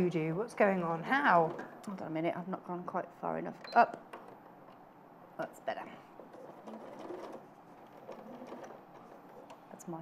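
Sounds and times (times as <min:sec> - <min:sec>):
electric sewing machine stitching: 0:06.4 - 0:09.5.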